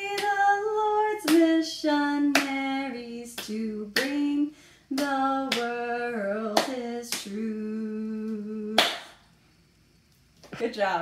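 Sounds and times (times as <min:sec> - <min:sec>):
woman singing: 0:00.0 - 0:09.2
hands clapping the beat: 0:01.2 - 0:01.5, 0:02.3 - 0:02.6, 0:03.4 - 0:04.2, 0:04.9 - 0:05.7, 0:06.6 - 0:07.3, 0:08.8 - 0:09.2.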